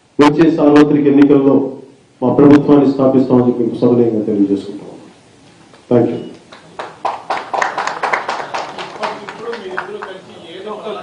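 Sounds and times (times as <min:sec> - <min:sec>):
small group applauding: 0:05.7 - 0:10.8.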